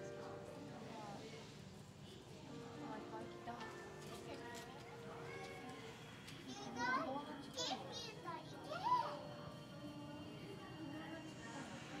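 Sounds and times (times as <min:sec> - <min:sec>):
children chattering: 0:05.0 - 0:10.4.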